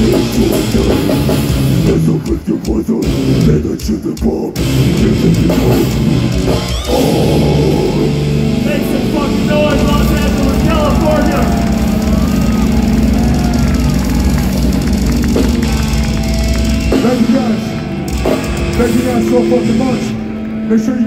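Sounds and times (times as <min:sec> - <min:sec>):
metal band guitars and bass drone: 0:00.0 - 0:21.0
crowd cheering and whistling: 0:06.1 - 0:21.0.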